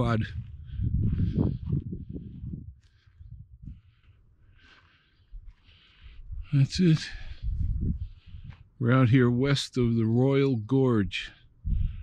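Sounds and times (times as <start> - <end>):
wind rumble on microphone: 0.0 - 4.0, 6.1 - 8.8, 11.6 - 12.0
footsteps on dry forest ground: 0.0 - 9.1.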